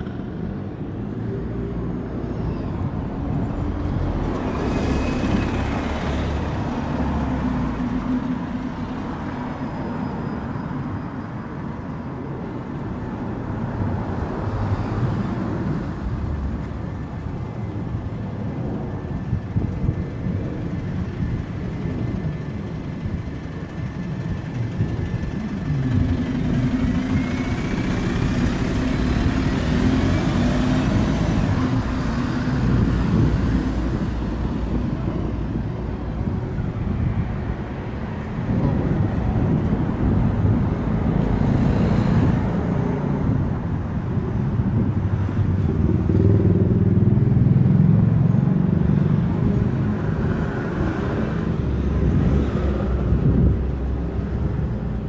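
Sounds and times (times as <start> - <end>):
vehicles passing: 0.0 - 55.0.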